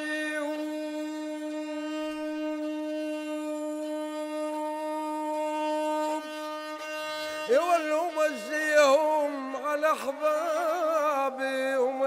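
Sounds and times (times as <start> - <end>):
bowed fiddle held note: 0.0 - 8.6.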